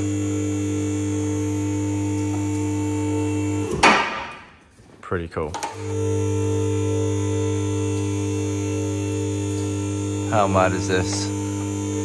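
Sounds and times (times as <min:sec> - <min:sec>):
hydraulic lift motor humming: 0:00.0 - 0:04.6, 0:05.6 - 0:12.0.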